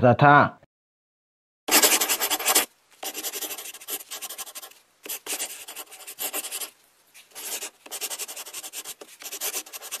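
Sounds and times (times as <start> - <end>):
scratchy rubbing: 1.7 - 10.0.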